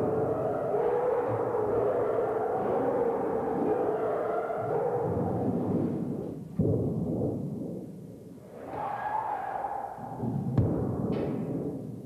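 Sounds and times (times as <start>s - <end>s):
rubbed steel sheet metallic drone: 0.0s - 6.6s.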